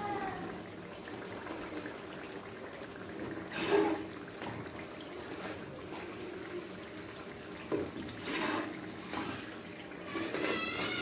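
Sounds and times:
greens sizzling in hot oil: 3.4s - 11.0s.

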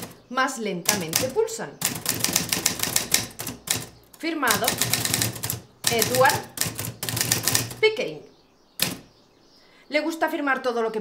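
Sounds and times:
typewriter clacking: 0.8s - 7.8s, 8.8s - 9.0s.

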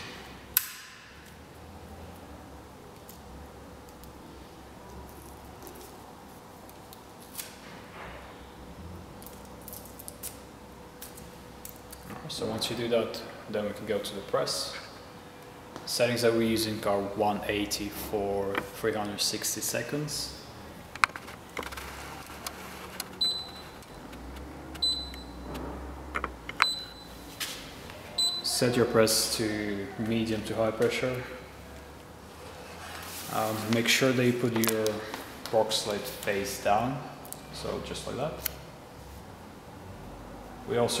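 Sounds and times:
handling of tape and paper: 4.8s - 7.8s, 21.0s - 24.8s.

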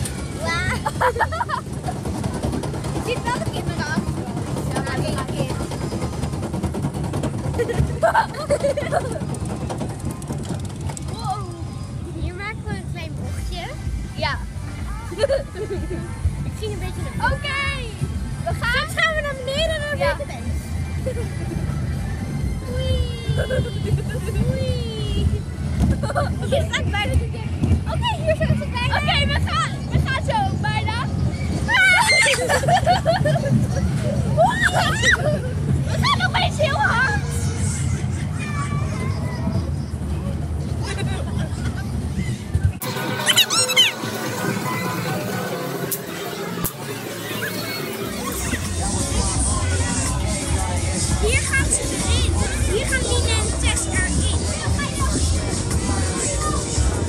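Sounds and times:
rollercoaster rumbling on track: 0.0s - 57.0s
girls laughing and squealing: 0.4s - 2.2s, 7.5s - 9.4s, 14.9s - 16.2s, 22.7s - 26.9s, 31.4s - 39.5s, 40.8s - 44.6s, 47.1s - 49.4s.

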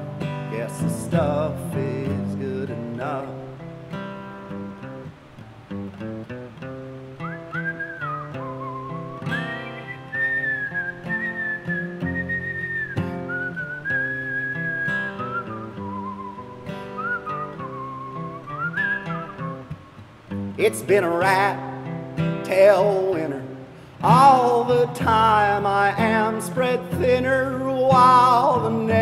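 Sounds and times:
acoustic guitar strumming: 0.0s - 29.0s
man whistling a melody: 7.1s - 20.0s, 24.0s - 29.0s.

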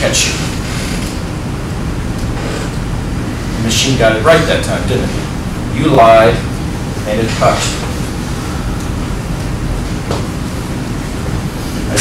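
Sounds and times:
classroom background rumble: 0.0s - 12.0s.

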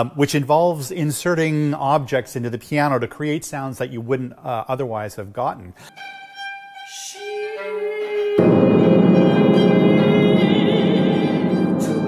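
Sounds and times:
chamber ensemble music: 8.2s - 12.0s.

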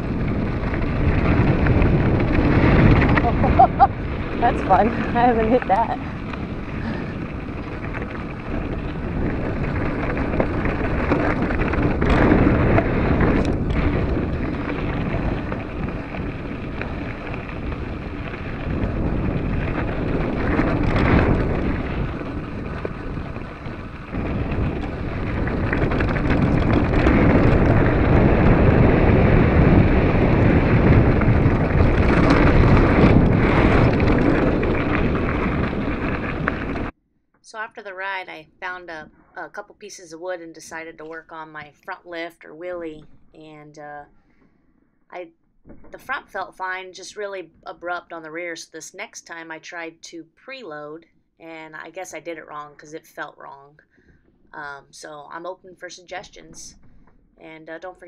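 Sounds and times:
bike rattling: 0.0s - 36.9s
tyres rumbling on rock: 0.0s - 36.9s
wind buffeting microphone: 0.0s - 44.1s.

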